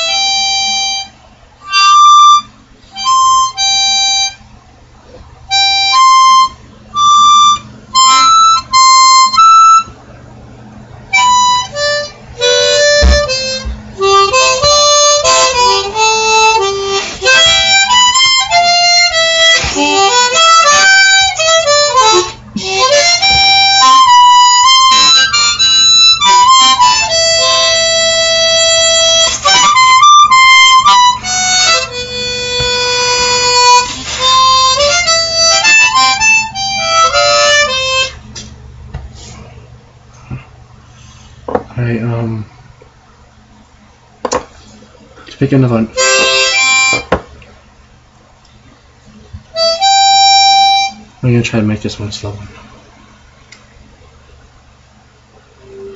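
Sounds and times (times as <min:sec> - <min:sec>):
harmonica melody: 0:00.0 - 0:04.5, 0:05.5 - 0:10.0, 0:11.1 - 0:38.5, 0:45.8 - 0:47.3, 0:49.5 - 0:51.2, 0:55.6 - 0:55.9.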